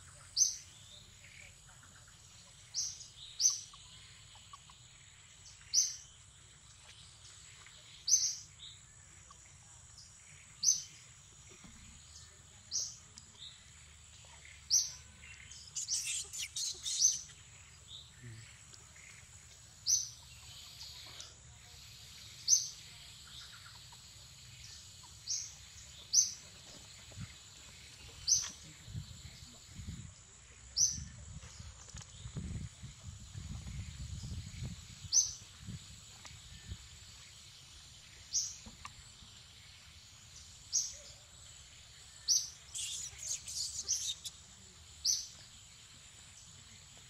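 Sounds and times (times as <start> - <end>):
bird chirps: 14.3 - 21.2, 42.2 - 45.4
bird calling: 15.8 - 17.4, 42.6 - 44.4.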